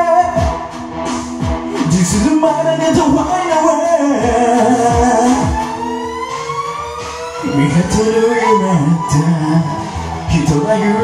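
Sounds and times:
rising synth tone: 0:05.0 - 0:11.0.

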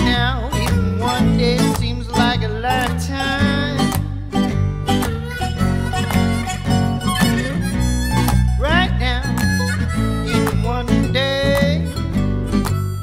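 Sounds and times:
guitar: 0:00.0 - 0:13.0
harmonica playing: 0:00.0 - 0:13.0.

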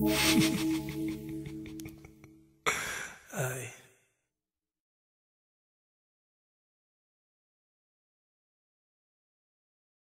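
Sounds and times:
man breathing out and sighing: 0:02.7 - 0:03.9.

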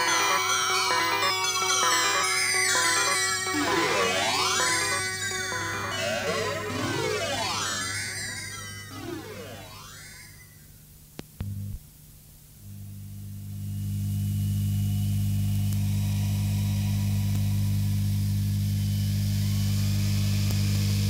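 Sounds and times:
stepped held synth tones: 0:00.0 - 0:10.6
synthesizer sweeping glides: 0:02.1 - 0:10.6.

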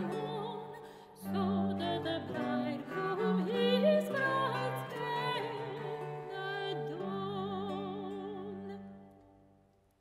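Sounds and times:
soprano singing with vibrato: 0:00.0 - 0:09.0
lute: 0:00.0 - 0:10.0.

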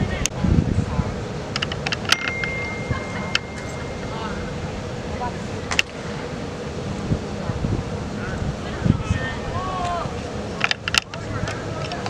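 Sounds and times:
distant indistinct voices: 0:00.0 - 0:12.0
wind on microphone: 0:00.0 - 0:12.0
faint high tone: 0:02.2 - 0:04.7.

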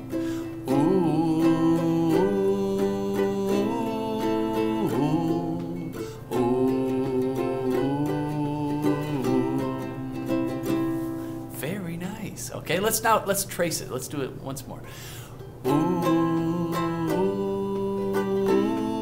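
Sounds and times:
man singing wordless melody: 0:00.0 - 0:19.0
strummed acoustic stringed instrument: 0:00.0 - 0:19.0.

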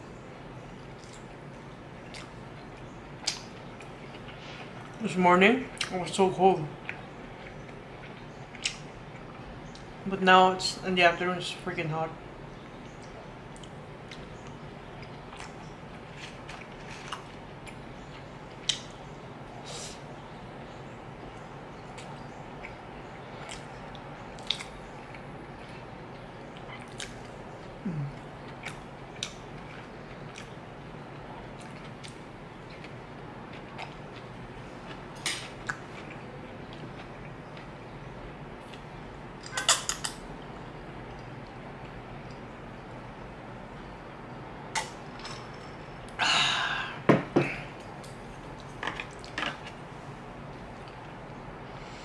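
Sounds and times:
person chewing food: 0:02.0 - 0:05.0, 0:12.8 - 0:19.0, 0:21.9 - 0:30.6, 0:31.2 - 0:37.8
breathy exhale: 0:46.2 - 0:47.7.

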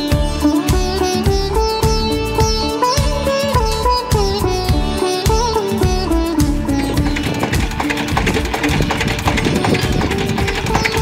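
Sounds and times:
busy percussion rhythm: 0:00.0 - 0:11.0
plucked strings: 0:00.0 - 0:11.0.

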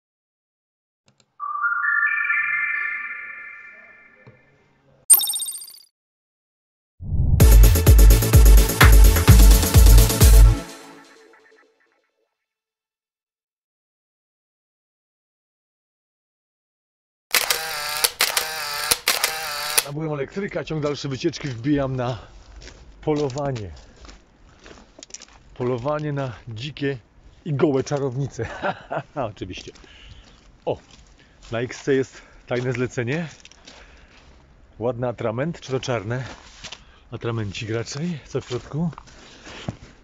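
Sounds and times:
bell-like synth notes: 0:01.4 - 0:04.2, 0:05.1 - 0:05.8.

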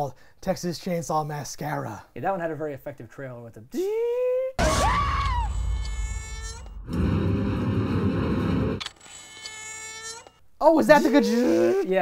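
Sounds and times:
loud low rushing burst: 0:04.6 - 0:08.8.

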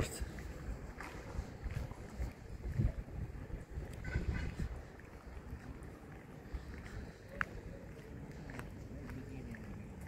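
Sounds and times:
wind buffeting microphone: 0:00.0 - 0:08.7.

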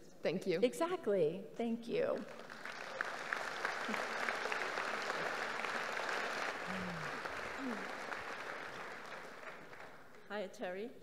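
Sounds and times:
audience applauding: 0:02.3 - 0:10.3.

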